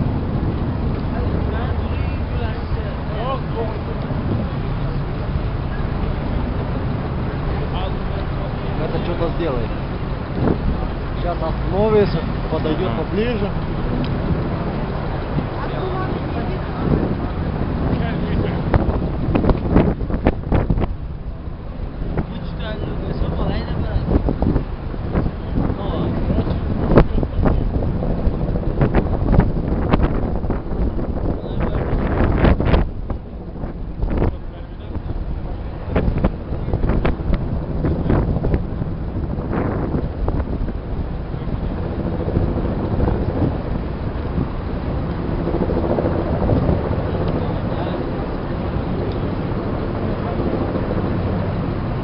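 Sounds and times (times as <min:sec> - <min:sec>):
low rumble: 0:00.0 - 0:52.0
wind buffeting microphone: 0:00.0 - 0:52.0.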